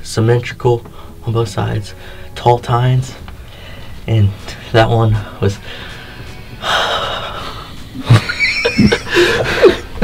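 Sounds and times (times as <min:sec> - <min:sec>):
people laughing excitedly: 0:08.0 - 0:10.0.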